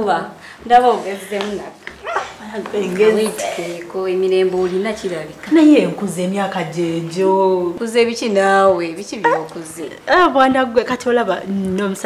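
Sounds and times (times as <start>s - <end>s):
woman speaking: 0.0s - 12.0s.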